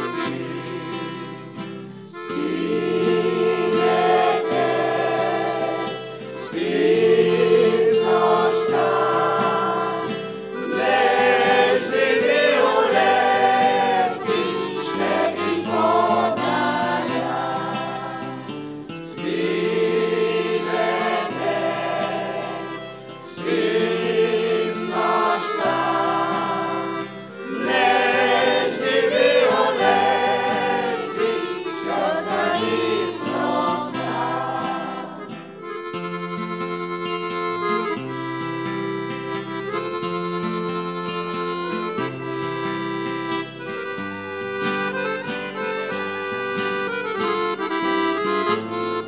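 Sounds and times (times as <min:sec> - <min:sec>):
accordion: 0:00.0 - 0:49.0
guitar: 0:00.0 - 0:49.0
mixed choir singing in harmony: 0:02.2 - 0:35.4.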